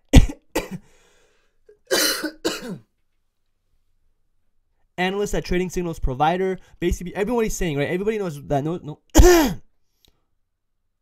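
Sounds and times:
man coughing: 0.1 - 0.9, 1.8 - 2.9, 9.1 - 9.7.

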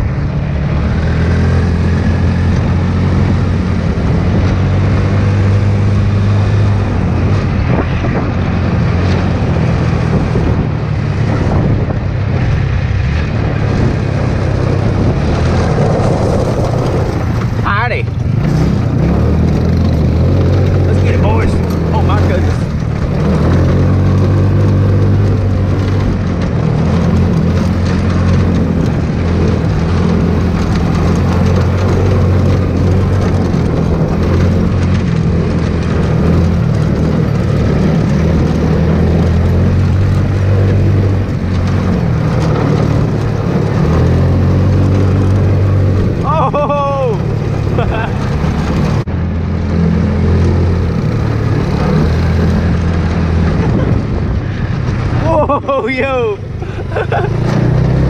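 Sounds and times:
go-kart engine running: 0.0 - 58.0.

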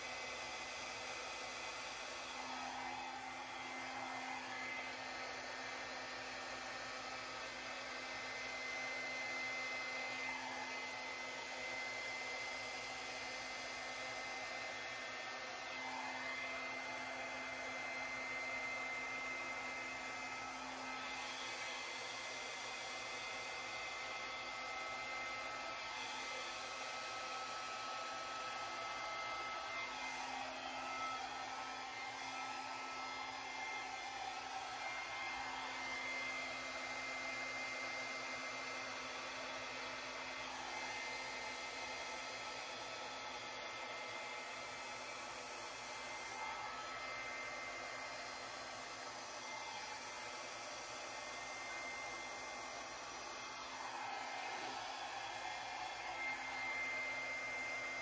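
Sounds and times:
hair dryer blowing with high whine: 0.0 - 58.0.

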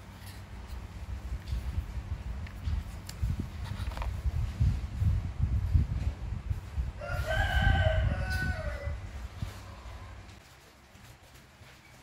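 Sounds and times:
rooster crowing: 7.0 - 10.2.

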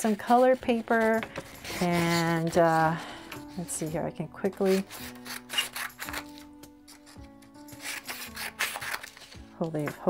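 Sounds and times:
scissors cutting paper: 0.0 - 9.5
soft background music: 0.0 - 10.0.

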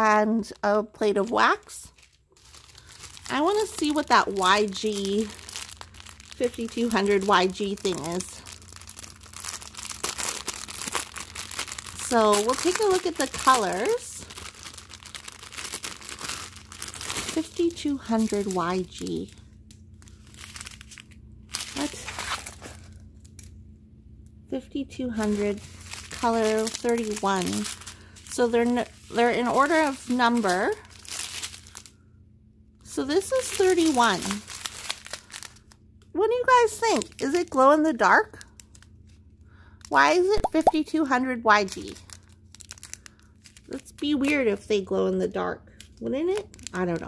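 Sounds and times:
plastic bag crinkling: 0.4 - 23.6, 25.0 - 32.0, 32.8 - 35.8, 36.4 - 40.0, 41.5 - 44.8, 45.7 - 47.0.

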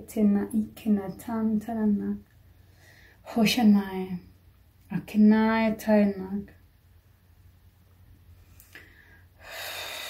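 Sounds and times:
woman breathing: 2.5 - 3.2, 8.4 - 10.0.

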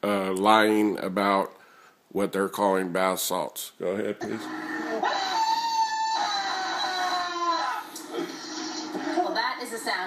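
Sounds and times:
man wailing through tv speaker: 4.2 - 9.0.

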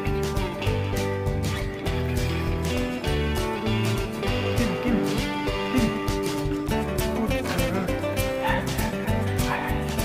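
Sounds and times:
acoustic guitar music: 0.0 - 10.0
small dog yipping: 8.4 - 8.9.

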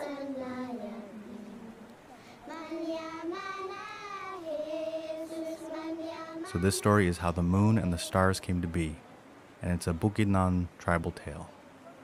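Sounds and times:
high voices singing long notes: 0.0 - 8.3.

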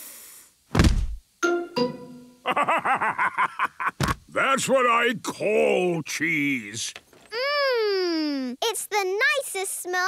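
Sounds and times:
long hissing sniff: 0.0 - 0.6
man laughing heartily: 2.4 - 4.2.

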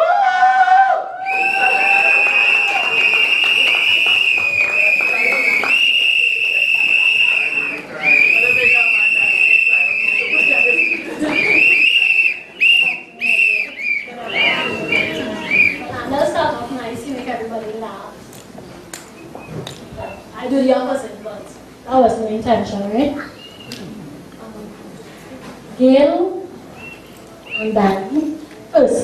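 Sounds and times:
microphone feedback whistling: 1.2 - 16.0, 19.2 - 20.3, 23.3 - 23.8, 26.8 - 27.9.

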